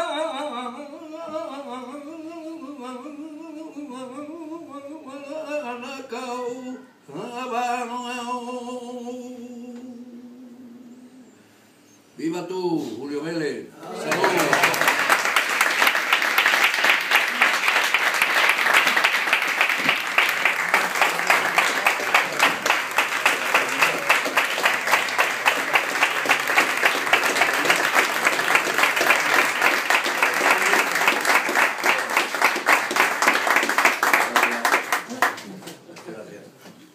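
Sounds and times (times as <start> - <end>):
audience applauding: 13.9 - 35.8.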